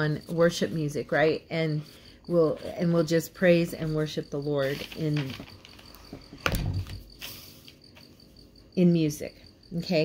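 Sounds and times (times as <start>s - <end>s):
soft paper rustle: 4.6s - 6.3s.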